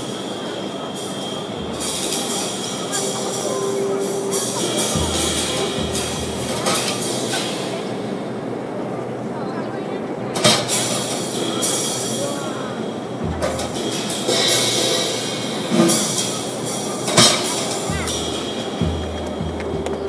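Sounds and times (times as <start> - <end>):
low sustained tone: 0.0 - 8.2
cymbal washes: 0.0 - 9.2, 10.4 - 20.0
sharp accented drum hit: 1.5 - 7.8, 13.2 - 16.0.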